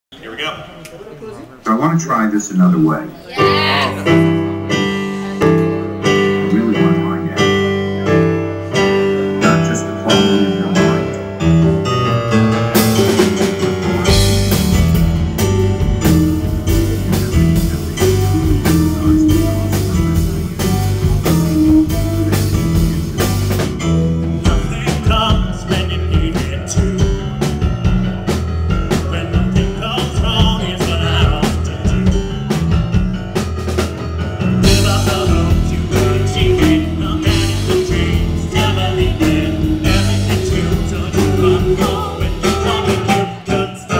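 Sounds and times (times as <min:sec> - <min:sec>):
drums: 0:00.1 - 0:43.9
keyboard chords: 0:01.9 - 0:43.9
bass guitar: 0:03.3 - 0:43.9.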